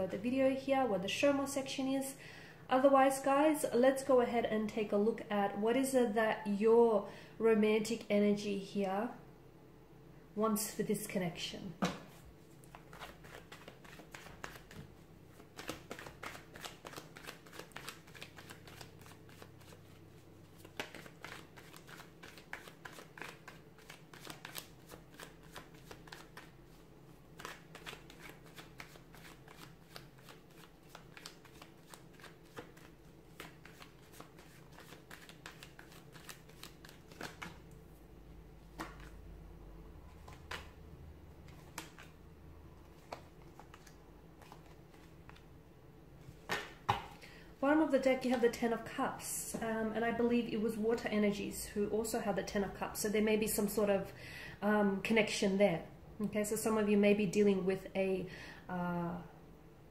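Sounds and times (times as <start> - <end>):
cards being shuffled: 11.8 - 37.7, 38.6 - 39.2, 40.1 - 40.8, 41.4 - 42.2, 42.8 - 45.5.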